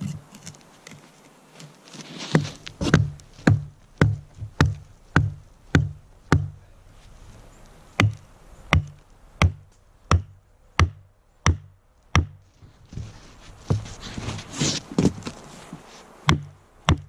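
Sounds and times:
hatchet striking wooden log: 2.3 - 6.6, 8.0 - 12.4, 16.3 - 17.0.

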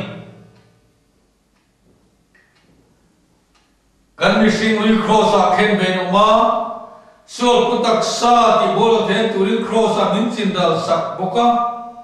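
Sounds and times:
soft ticks: 1.5 - 2.8, 3.4 - 3.9.

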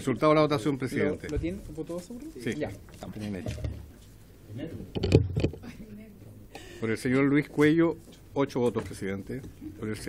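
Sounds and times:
men speaking: 0.0 - 5.0, 6.7 - 10.0.

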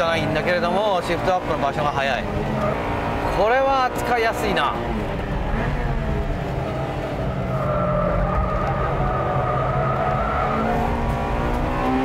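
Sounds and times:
car engine running hard: 0.0 - 12.0.

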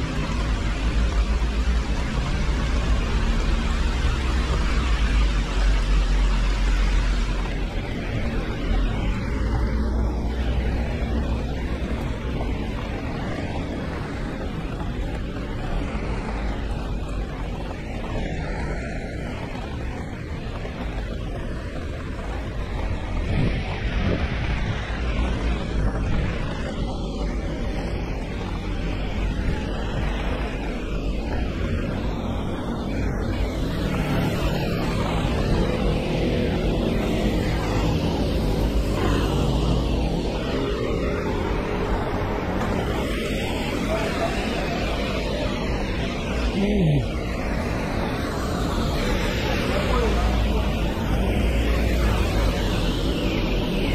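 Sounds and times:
low traffic rumble: 0.0 - 53.9
tyres on wet road: 0.0 - 53.9.

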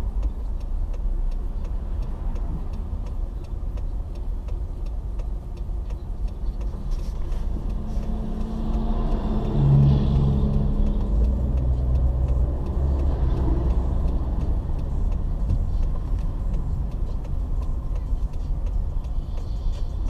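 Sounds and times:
road and engine rumble inside car: 0.0 - 20.0
trucks passing: 0.0 - 20.0.

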